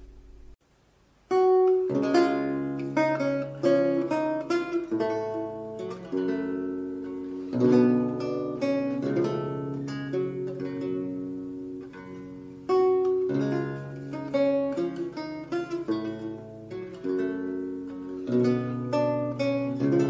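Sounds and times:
plucked lute melody: 0:01.3 - 0:20.0.

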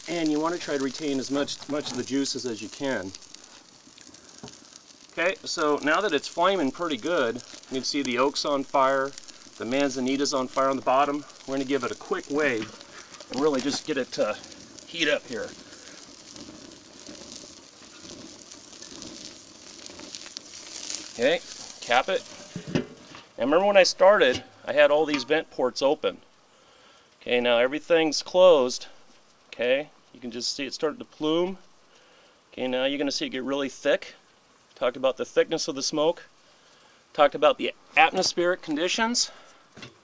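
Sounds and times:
wood fire crackling and popping: 0:00.0 - 0:40.0
faint sharp pops: 0:02.7 - 0:05.7.

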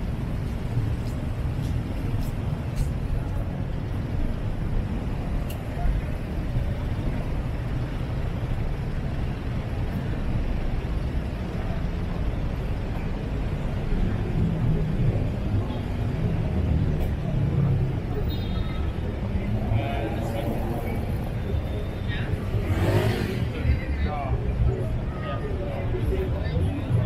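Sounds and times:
cars passing on road: 0:00.0 - 0:27.0.

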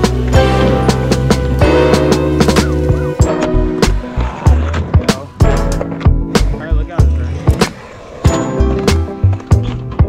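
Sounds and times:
background music with steady beat: 0:00.0 - 0:10.0
skateboard rolling on concrete: 0:00.0 - 0:10.0.

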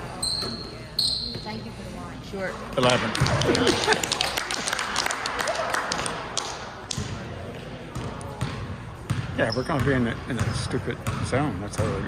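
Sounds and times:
sneaker squeaks: 0:00.0 - 0:01.7, 0:08.0 - 0:12.0
spectators' voices in a gym: 0:00.0 - 0:12.0
basketball bouncing on gym floor: 0:07.9 - 0:12.0.

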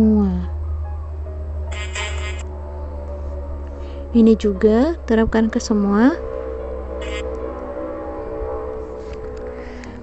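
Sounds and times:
sustained chord over low bass: 0:00.0 - 0:10.0.

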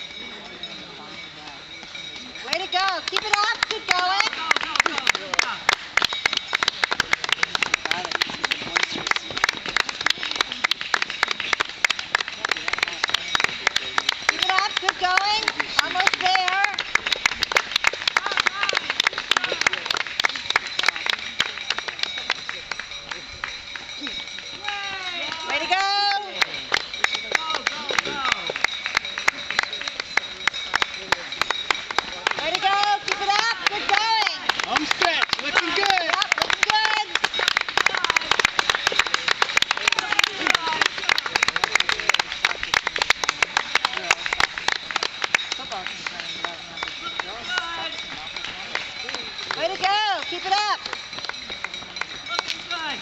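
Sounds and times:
running footsteps on asphalt: 0:01.8 - 0:53.0.

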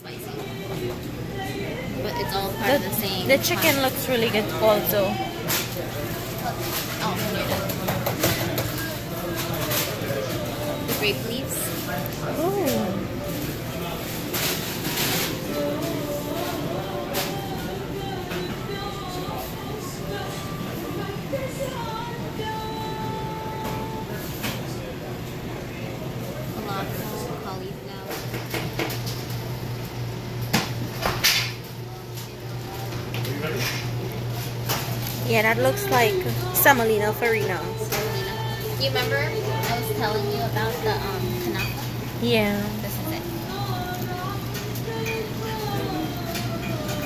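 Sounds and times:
indistinct voices: 0:00.0 - 0:24.0, 0:35.2 - 0:47.0
shop background noise: 0:00.0 - 0:47.0.

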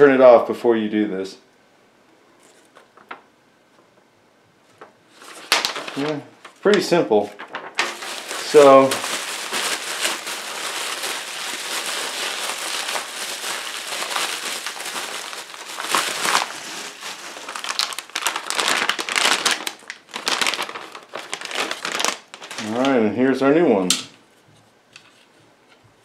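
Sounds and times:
bubble wrap crinkling and crackling: 0:02.5 - 0:03.2, 0:04.7 - 0:23.0.

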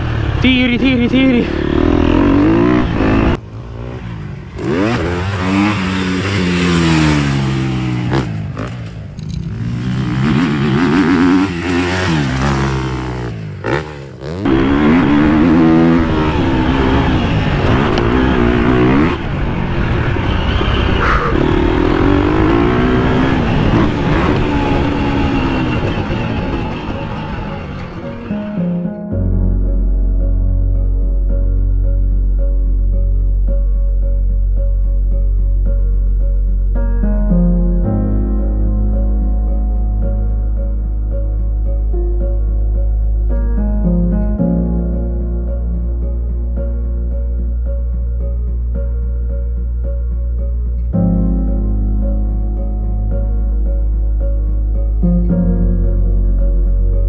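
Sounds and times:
motocross bike engine revving: 0:00.0 - 0:28.4.

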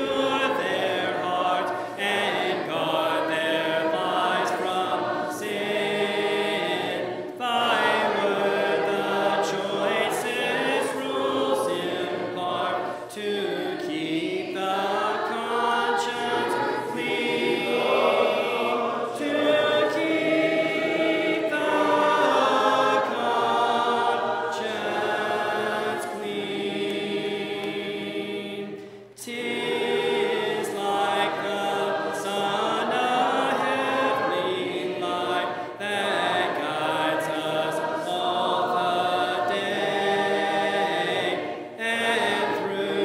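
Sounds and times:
choir singing a hymn: 0:00.0 - 0:43.0.

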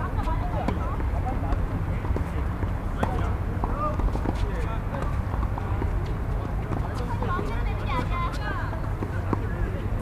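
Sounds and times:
tennis balls being hit: 0:00.2 - 0:06.0.

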